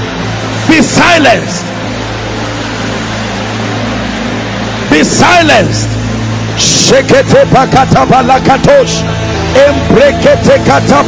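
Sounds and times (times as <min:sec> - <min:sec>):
man praying aloud: 0:06.6 - 0:11.0.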